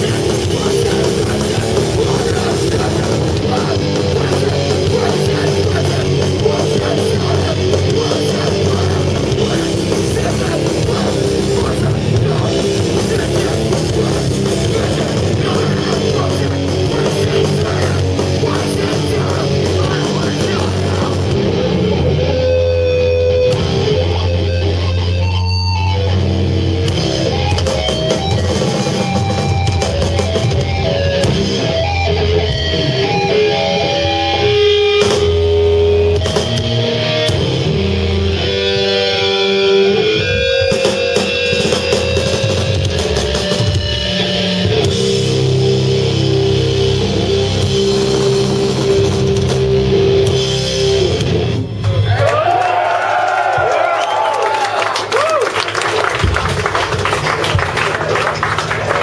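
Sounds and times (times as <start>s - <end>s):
live metal band playing: 0.0s - 54.2s, 55.0s - 59.0s.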